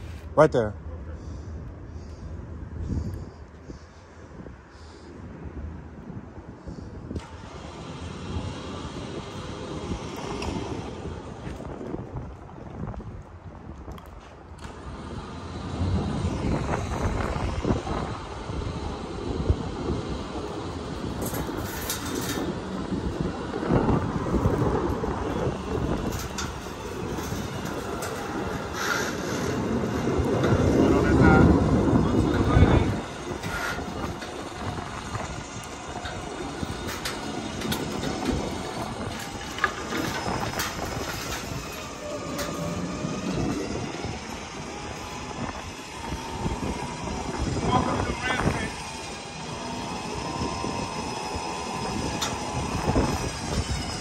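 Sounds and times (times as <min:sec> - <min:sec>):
vehicle rumbling up metal ramps: 0:06.6 - 0:12.8, 0:14.5 - 0:54.0.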